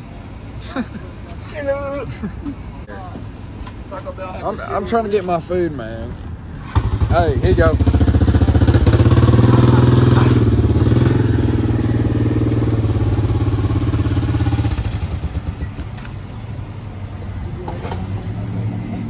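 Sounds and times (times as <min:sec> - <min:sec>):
engine idling: 0:00.0 - 0:19.0.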